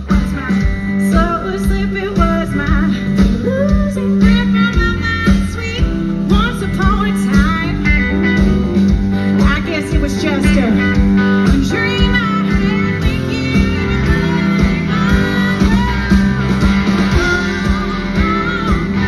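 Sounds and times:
blues-rock band playing: 0.0s - 19.0s
lead guitar bent notes: 4.1s - 19.0s.

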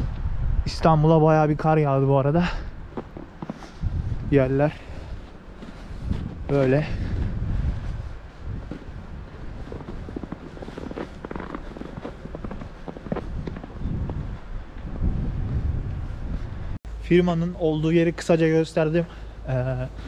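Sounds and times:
wind buffeting microphone: 0.0s - 16.8s
footsteps crunching in snow: 2.8s - 16.8s.

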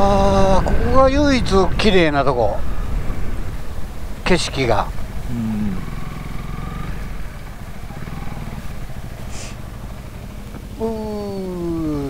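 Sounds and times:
motorcycle engine running low: 0.0s - 12.0s.

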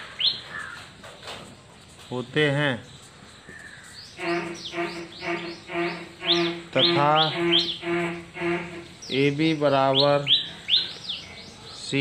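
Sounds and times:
bird chirping: 0.0s - 12.0s.

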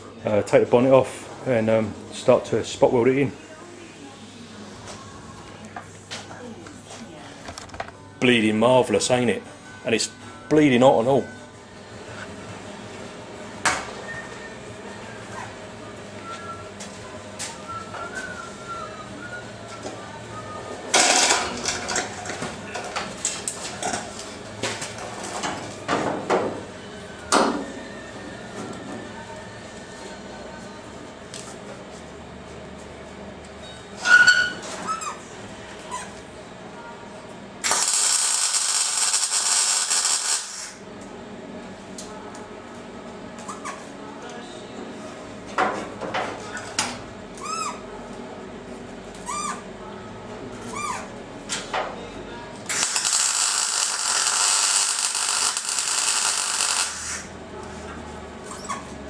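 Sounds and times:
welder hissing: 37.6s - 40.8s, 52.7s - 57.3s.

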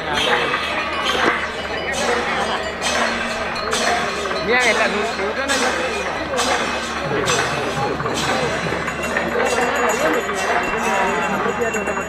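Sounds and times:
crowd talking: 0.0s - 12.0s
sharp high-pitched clashes: 0.0s - 12.0s.

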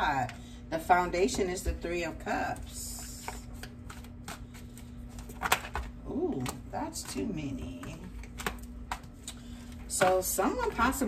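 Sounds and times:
cards being shuffled: 3.0s - 11.0s.

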